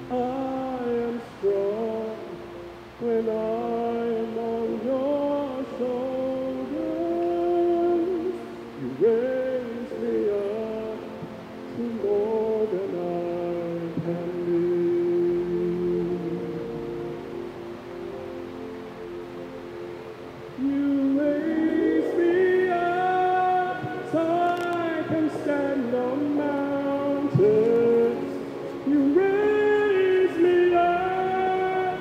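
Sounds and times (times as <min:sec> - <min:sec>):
slow song: 0:00.0 - 0:32.0.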